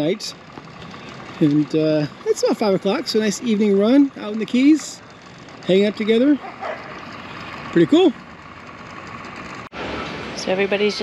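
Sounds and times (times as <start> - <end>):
outboard motors humming: 0.0 - 11.0.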